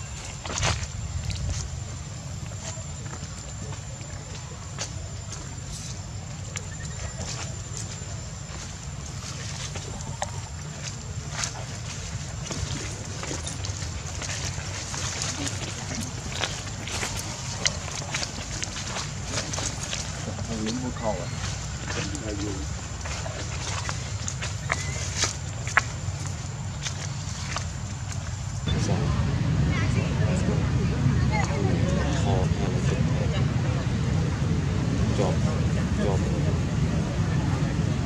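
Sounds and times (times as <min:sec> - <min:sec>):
steady low rumble: 0:00.0 - 0:38.0.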